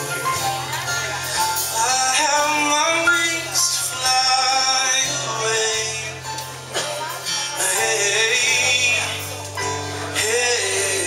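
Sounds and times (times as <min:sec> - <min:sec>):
live band playing: 0:00.0 - 0:11.0
person singing: 0:00.0 - 0:11.0.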